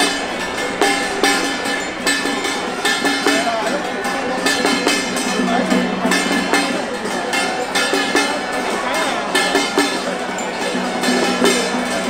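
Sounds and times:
held melody notes: 0.0s - 12.0s
sharp percussive strikes: 0.0s - 12.0s.

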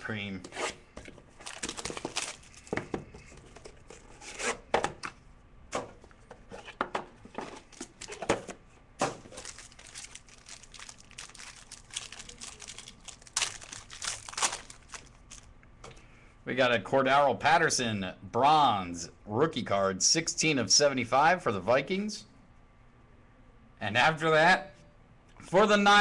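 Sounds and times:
plastic wrapping tearing and crinkling: 1.3s - 2.8s, 7.6s - 8.3s, 9.1s - 15.5s.

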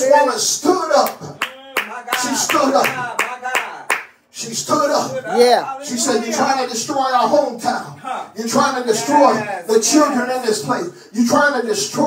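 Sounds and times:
raised voice preaching: 0.0s - 12.0s
sharp hand claps: 1.0s - 4.2s.

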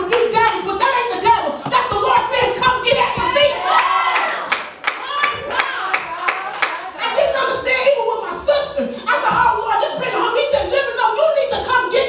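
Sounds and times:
congregation clapping: 3.3s - 6.9s.

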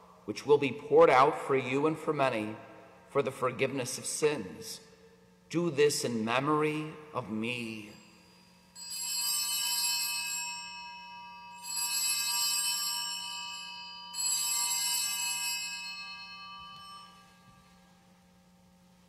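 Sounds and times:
bell ringing high chime: 7.8s - 18.1s.

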